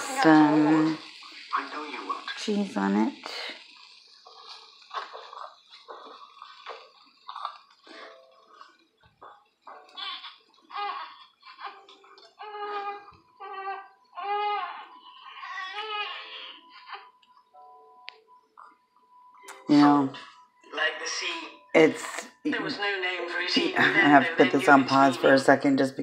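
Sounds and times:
voices from television: 0.0s - 26.0s.

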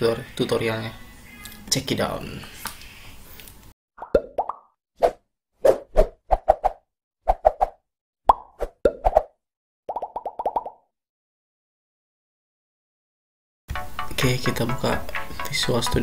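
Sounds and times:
short plops and pops: 4.0s - 4.7s, 9.9s - 10.9s.

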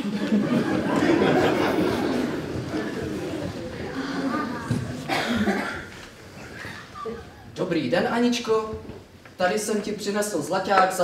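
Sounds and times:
person coughing: 5.0s - 6.0s.

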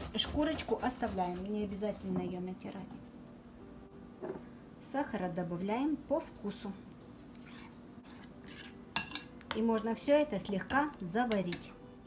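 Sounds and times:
spoon scraping ceramic bowl: 7.3s - 9.3s
spoon clinking on bowl: 9.0s - 9.6s.

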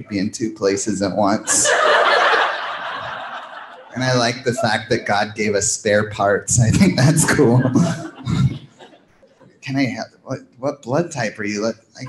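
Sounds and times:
audience laughing: 1.2s - 5.6s, 6.7s - 10.0s.

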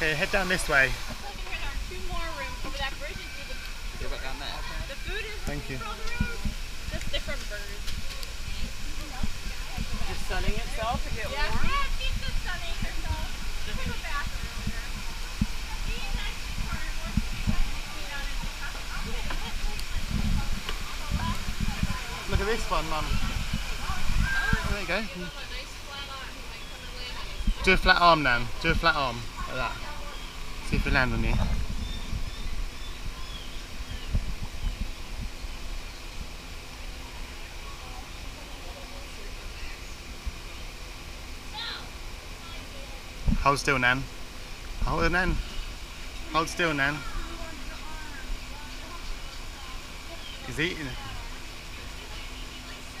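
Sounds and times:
distant murmur: 0.0s - 53.0s
steady background hum: 0.0s - 53.0s
faint voices of people: 1.2s - 35.3s, 36.2s - 43.4s, 44.8s - 53.0s
small birds chirping: 1.3s - 38.6s, 44.9s - 53.0s
faint bird chirps: 31.7s - 36.1s.

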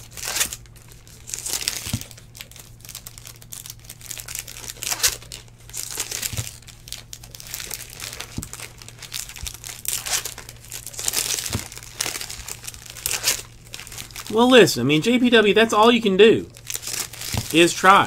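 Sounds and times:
cards rustling: 0.0s - 18.0s
foil wrappers crinkling: 0.0s - 18.0s
steady low hum: 0.0s - 18.0s.

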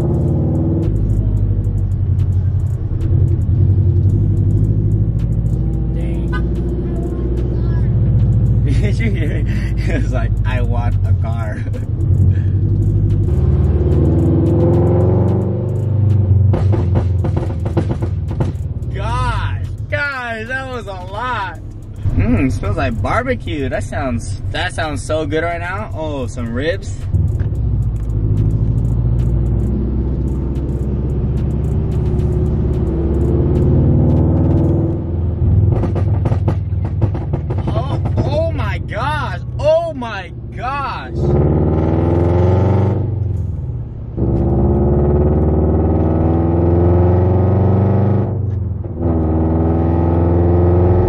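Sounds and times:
car engine accelerating through gears: 0.0s - 39.5s, 40.4s - 51.0s.

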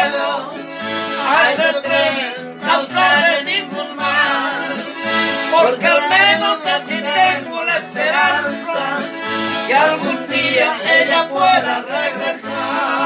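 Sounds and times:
accordion: 0.0s - 13.0s
acoustic guitar: 0.0s - 13.0s
men singing held notes: 0.0s - 13.0s.

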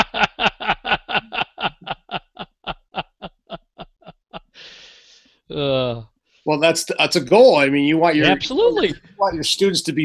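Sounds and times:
man laughing: 0.0s - 4.6s.

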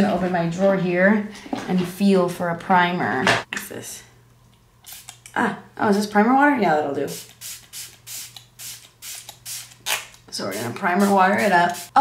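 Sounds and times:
spray bottle hissing: 4.9s - 5.2s, 7.1s - 10.2s, 11.0s - 12.0s.

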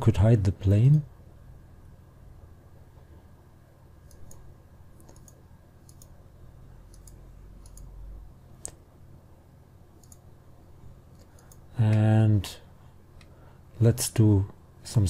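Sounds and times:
faint low hum: 0.0s - 15.0s.

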